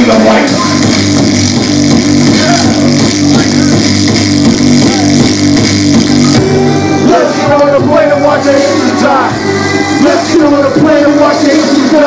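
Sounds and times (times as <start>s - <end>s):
distorted electric guitar: 0.0s - 12.0s
low bass pattern and beat: 0.0s - 12.0s.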